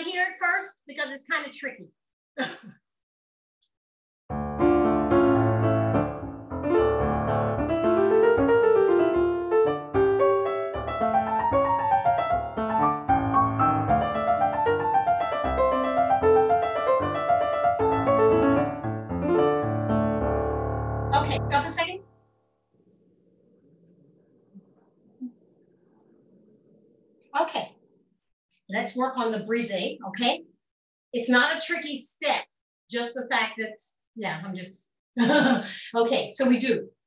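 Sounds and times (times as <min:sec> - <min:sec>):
lively piano playing: 0:04.3 - 0:21.8.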